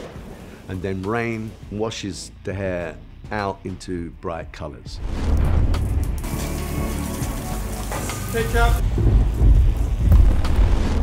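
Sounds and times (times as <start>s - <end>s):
deep rumble: 5.0s - 6.3s, 8.8s - 11.0s
heavy rain pouring: 5.0s - 11.0s.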